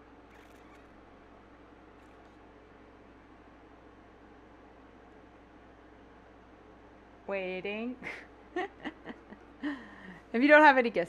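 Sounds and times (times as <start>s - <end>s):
faint static-like hiss with hum: 0.0s - 11.0s.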